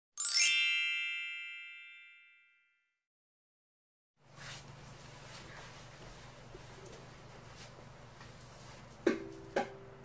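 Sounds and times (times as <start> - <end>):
bright chime ringing: 0.2 - 2.8.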